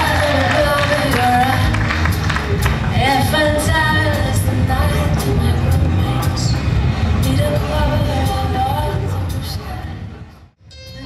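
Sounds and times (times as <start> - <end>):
woman singing: 0.0 - 1.9, 2.9 - 6.5, 7.2 - 10.0.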